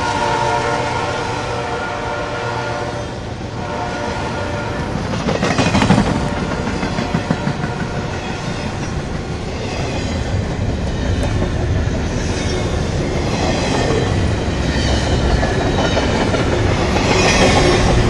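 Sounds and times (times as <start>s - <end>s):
train wheels rumbling on rails: 0.0s - 18.0s.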